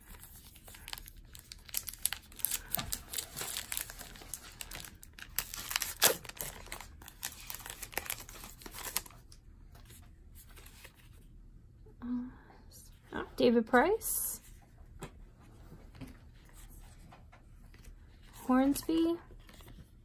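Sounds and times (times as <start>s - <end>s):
wrapper crinkling and tearing: 0.0s - 9.3s.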